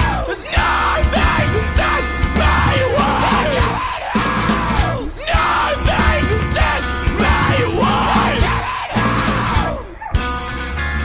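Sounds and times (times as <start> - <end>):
screamed vocal: 0.0 - 10.2
loud rock band playing: 0.0 - 11.0.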